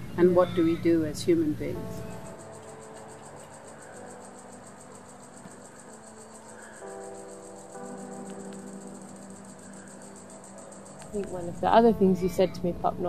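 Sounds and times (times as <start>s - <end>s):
insects chirping: 0.0s - 13.0s
low held notes: 0.0s - 13.0s.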